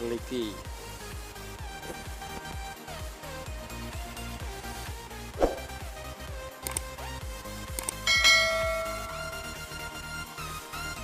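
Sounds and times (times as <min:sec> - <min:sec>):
electronic background music: 0:00.0 - 0:11.0
sharp mouse clicks: 0:06.6 - 0:06.9, 0:07.7 - 0:08.0
bell chime: 0:08.1 - 0:09.8.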